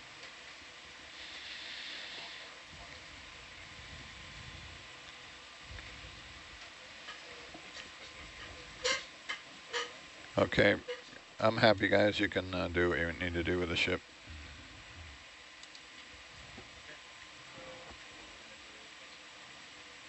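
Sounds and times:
man speaking: 10.4 - 10.8, 11.4 - 14.0.

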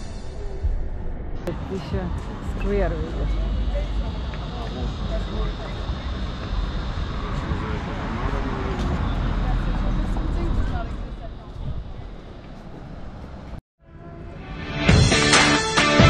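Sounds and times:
people's voices: 0.0 - 14.5
steady low street rumble: 0.0 - 15.8.

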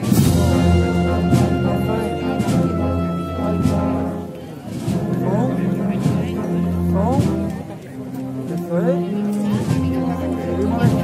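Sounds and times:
percussion strikes: 0.0 - 7.7, 9.3 - 11.0
wind band playing a march: 0.0 - 11.0.

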